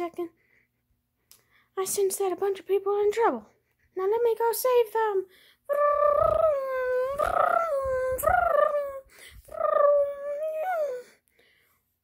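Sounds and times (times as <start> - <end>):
person making high wavering calls: 5.7 - 11.1.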